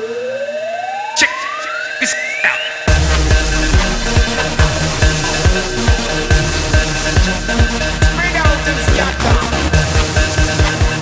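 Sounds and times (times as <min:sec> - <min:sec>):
rising synth tone: 0:00.0 - 0:10.6
sharp hit: 0:02.9 - 0:10.1.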